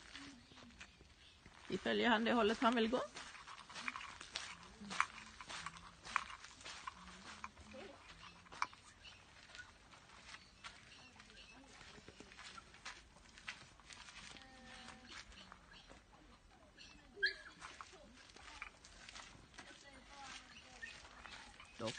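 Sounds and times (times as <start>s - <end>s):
quiet clicks and scuffs: 0.0s - 21.9s.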